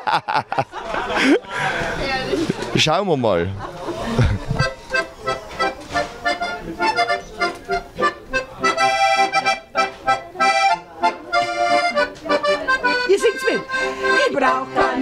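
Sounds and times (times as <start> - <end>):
accordion playing chords: 4.6 - 15.0.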